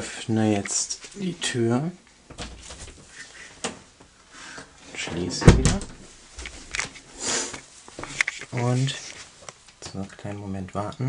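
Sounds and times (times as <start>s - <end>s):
faint rubbing: 6.0s - 9.6s.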